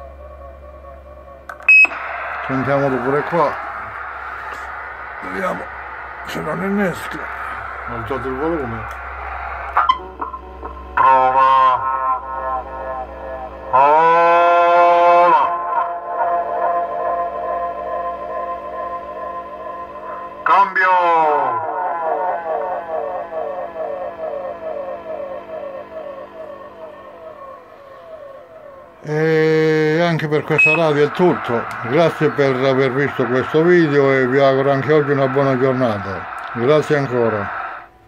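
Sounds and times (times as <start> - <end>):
voice over radio with echo: 2.2 - 9.8, 10.9 - 13.0, 20.4 - 24.1, 29.0 - 37.8.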